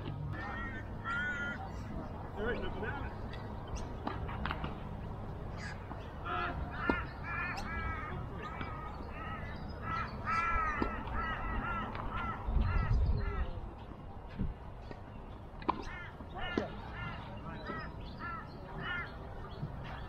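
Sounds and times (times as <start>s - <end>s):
bird harsh calls: 0.3s - 1.9s, 5.5s - 13.6s, 15.8s - 20.0s.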